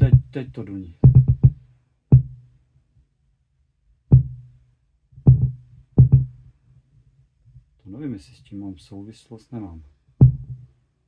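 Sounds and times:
subwoofer low thumps: 0.0 - 2.5, 4.1 - 4.6, 5.2 - 6.5, 10.2 - 10.8.

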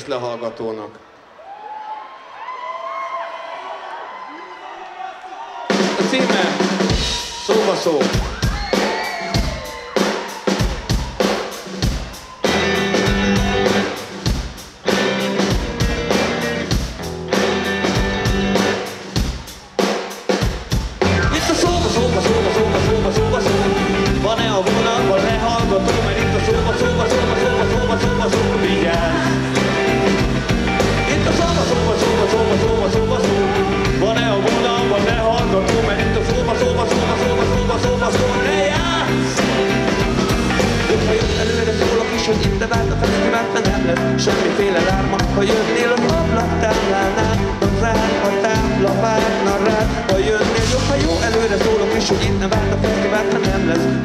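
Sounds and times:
drum kit kick and snare: 5.7 - 53.8
electric guitars: 10.7 - 19.4, 20.8 - 54.0
bass guitar: 11.8 - 19.4, 20.8 - 54.0.

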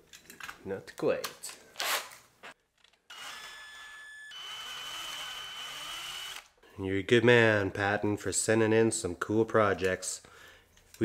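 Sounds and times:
electric drill whining: 3.1 - 6.5.

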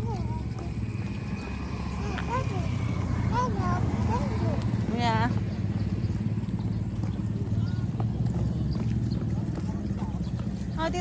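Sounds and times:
pulsing engine-like rumble: 0.0 - 11.0.

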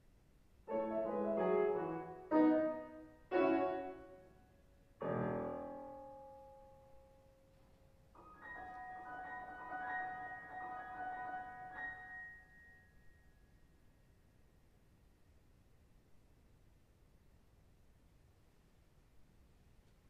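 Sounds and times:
loud piano chords: 0.7 - 7.1, 8.2 - 12.8
soft repeating high piano notes: 0.7 - 14.4.

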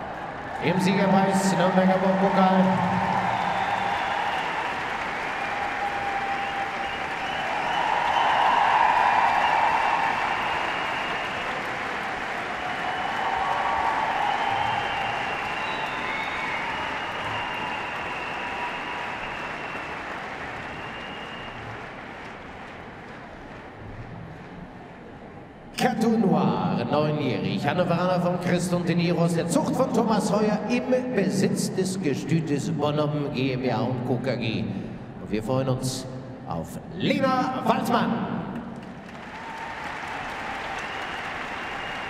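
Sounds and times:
audience applauding: 0.0 - 25.2, 38.5 - 42.0.

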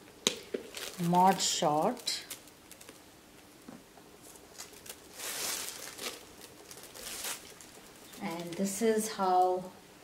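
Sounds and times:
bag rustling: 4.2 - 8.7.

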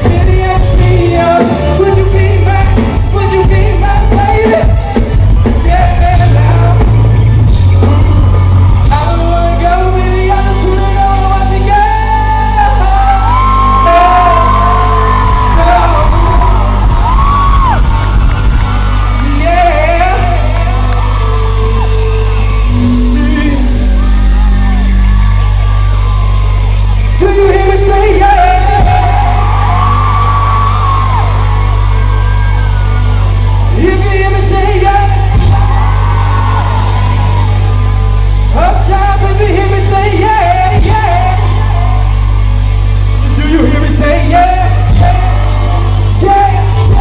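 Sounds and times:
man singing into microphone: 0.0 - 5.0, 5.6 - 7.1, 7.8 - 16.7, 19.2 - 24.9
heavy steady bass: 0.0 - 47.0
r and b band playing: 0.0 - 47.0.

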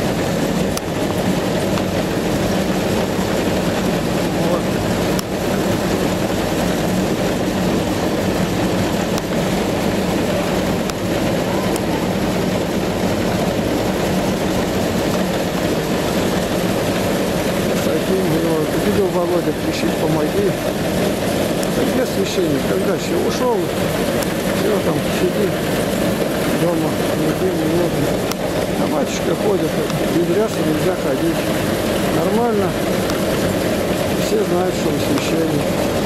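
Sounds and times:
heavy farm machinery running: 0.0 - 36.0.

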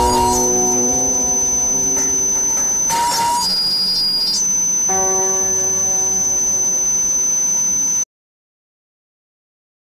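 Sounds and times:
low-pitched tone chord: 0.0 - 2.0
piercing high tone: 0.0 - 2.0.

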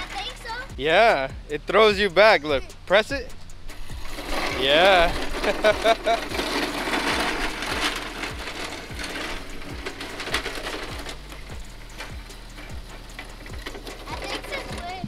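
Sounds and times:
background music with beat: 0.0 - 15.0
electric cart motor and wheels: 0.0 - 15.0.

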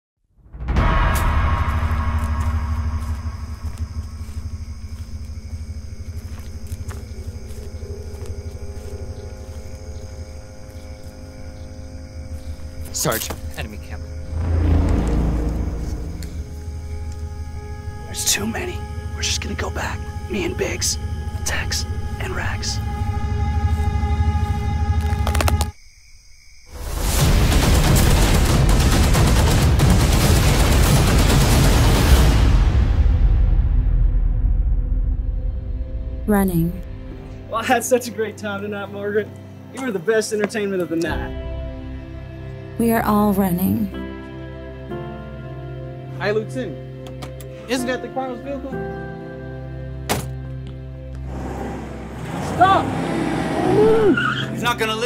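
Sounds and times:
sustained droning chord: 13.6 - 25.1
deep steady rumble: 14.0 - 25.0
rapid gunfire barrage: 27.2 - 32.3.

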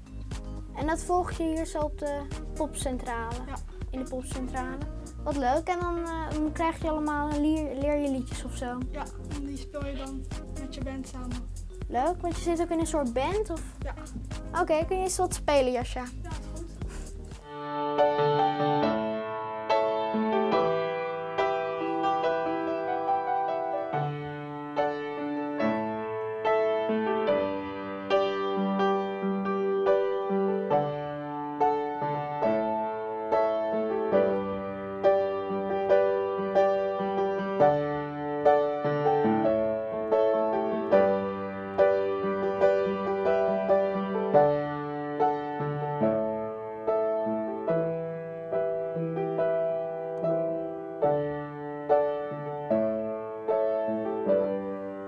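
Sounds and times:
upright piano tune: 0.0 - 55.0.

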